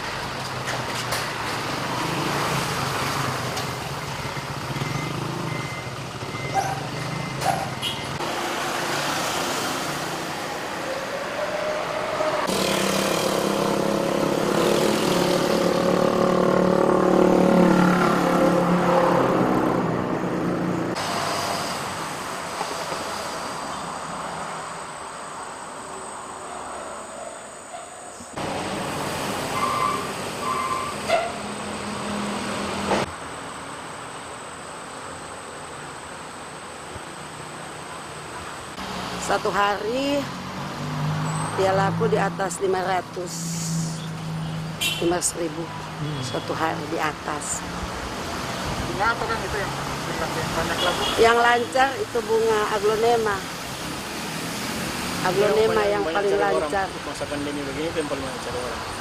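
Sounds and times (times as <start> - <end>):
vehicles passing: 0.0 - 59.0.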